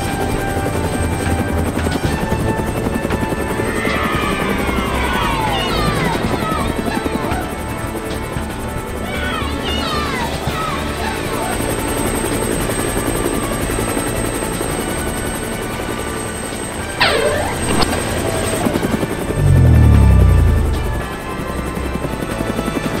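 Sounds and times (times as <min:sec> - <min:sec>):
background music: 0:00.0 - 0:23.0
cartoon helicopter rotor chop: 0:16.9 - 0:21.3
loud deep hum falling in pitch: 0:19.3 - 0:21.3
quick falling sweeps: 0:19.4 - 0:21.1.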